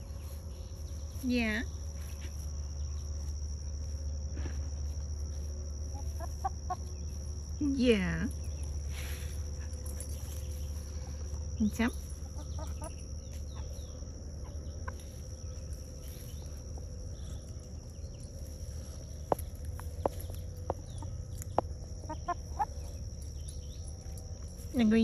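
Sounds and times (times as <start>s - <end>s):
hens clucking: 12.2s - 15.2s, 20.6s - 22.8s.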